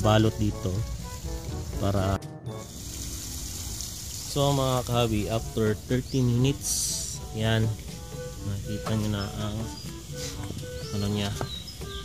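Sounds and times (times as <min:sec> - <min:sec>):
water gushing and splashing: 0:02.6 - 0:06.0.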